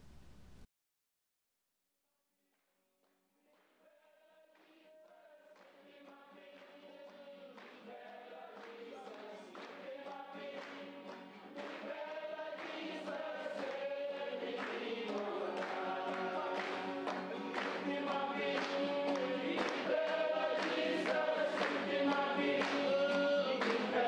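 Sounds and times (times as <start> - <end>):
choir singing: 5.8 - 24.0.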